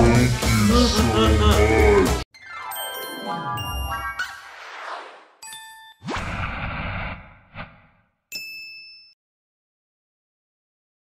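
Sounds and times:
bell-like ding: 8.3s - 9.2s.

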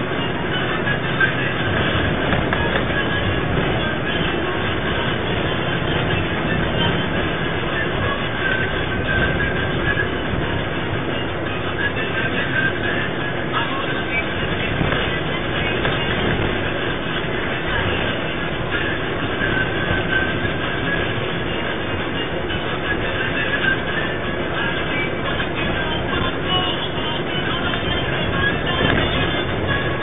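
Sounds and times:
bus rumbling and rattling: 0.0s - 30.0s
music playing: 0.0s - 30.0s.

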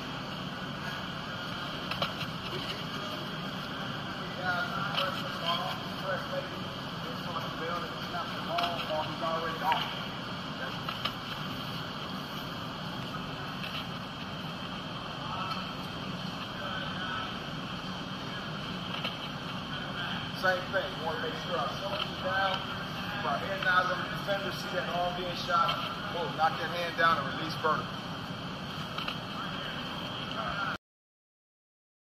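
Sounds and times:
background hum and hiss: 0.0s - 30.8s
faint indistinct voices: 0.6s - 30.8s.

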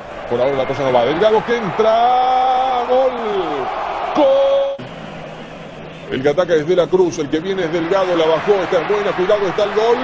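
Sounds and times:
stadium crowd hubbub: 0.0s - 10.0s.

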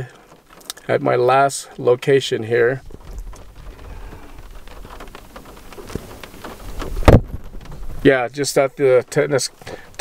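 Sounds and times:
raindrops ticking: 0.0s - 10.0s
steady rain hiss: 0.0s - 10.0s.

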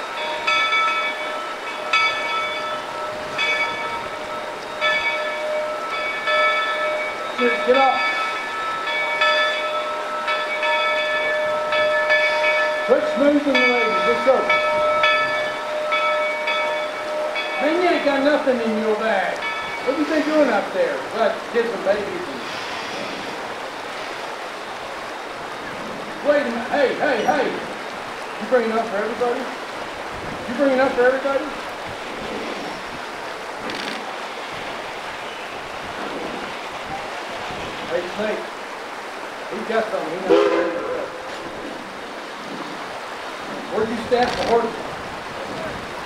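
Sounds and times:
locomotive bell clanging: 0.0s - 23.4s, 25.6s - 29.6s, 39.6s - 42.3s
river rushing over rocks: 0.0s - 46.0s.

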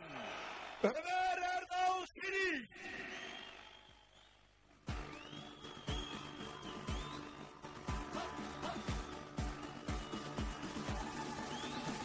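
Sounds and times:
man calling out over loudspeaker: 1.0s - 2.7s
rally music with heavy beat: 4.9s - 12.0s.

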